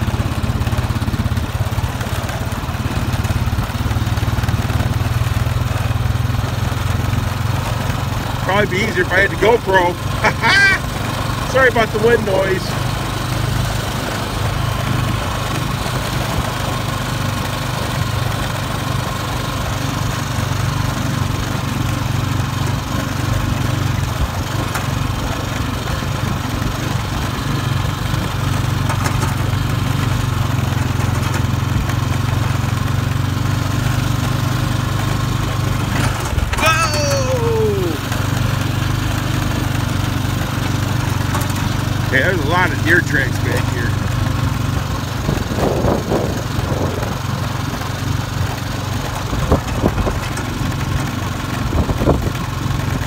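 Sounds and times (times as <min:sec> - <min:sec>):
atv engine running: 0:00.0 - 0:53.0
wind buffeting microphone: 0:45.2 - 0:47.2.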